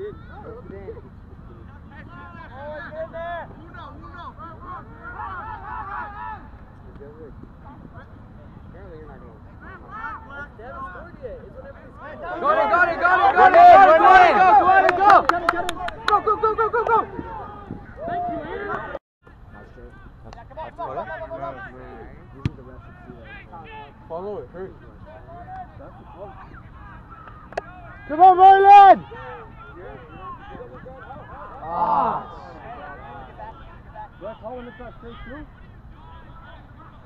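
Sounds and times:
people shouting and calling: 1.7s - 6.7s, 9.6s - 11.0s, 12.0s - 19.0s, 25.0s - 37.0s.

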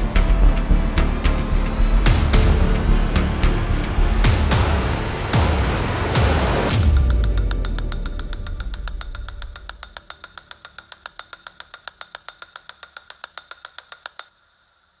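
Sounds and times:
fast even ticking: 6.8s - 14.3s.

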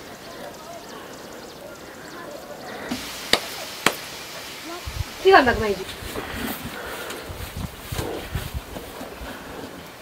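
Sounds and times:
faint background voices: 0.0s - 8.4s.

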